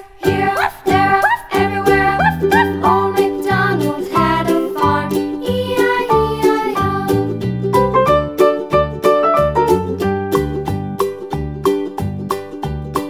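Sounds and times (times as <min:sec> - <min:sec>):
plucked-string melody over a beat: 0:00.0 - 0:13.0.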